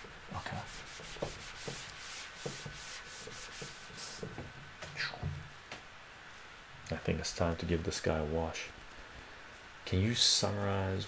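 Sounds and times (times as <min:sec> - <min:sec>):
cloth wiping a whiteboard: 0:00.3 - 0:04.5.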